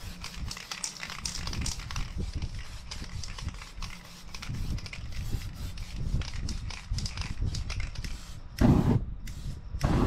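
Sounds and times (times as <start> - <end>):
spray-paint can hissing: 0.0 - 10.0.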